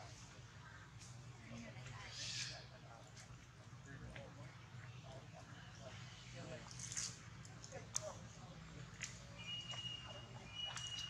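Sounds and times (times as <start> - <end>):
distant voices murmuring: 0.0 - 11.0.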